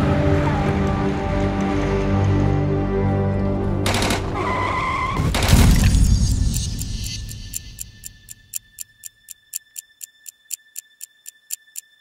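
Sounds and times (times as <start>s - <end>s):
documentary music: 0.0s - 12.0s.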